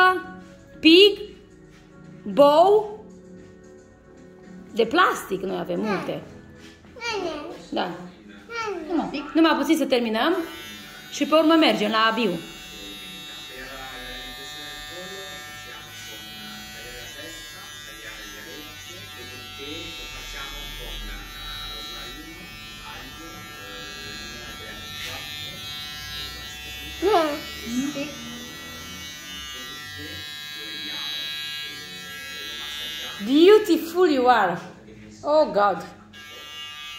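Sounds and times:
hair trimmer buzzing: 9.2 - 34.6, 36.0 - 36.9.

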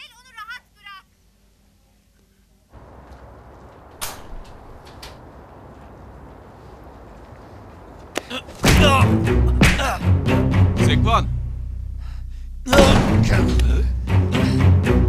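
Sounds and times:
steady outdoor hiss: 0.0 - 15.0.

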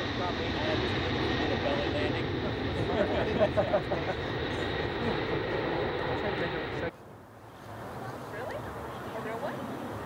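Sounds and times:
jet engine noise: 0.0 - 7.0, 7.7 - 10.0
people's voices: 0.0 - 10.0.

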